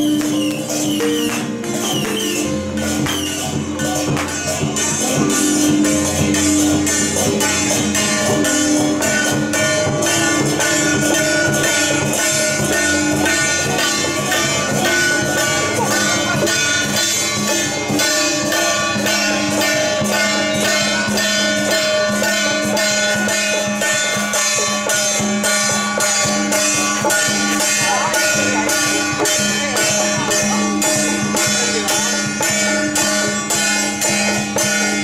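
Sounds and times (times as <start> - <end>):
metal hand percussion beat: 0.0 - 35.0
sustained melody: 0.0 - 35.0.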